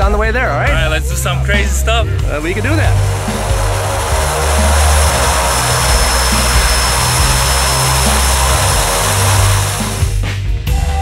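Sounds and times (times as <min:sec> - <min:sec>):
high turbine whine: 0:02.2 - 0:10.2
propeller and engine roar: 0:02.2 - 0:10.2.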